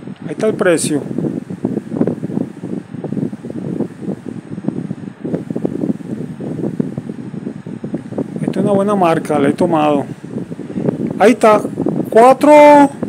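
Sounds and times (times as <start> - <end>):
low rumbling and rustling noise: 0.0 - 13.0.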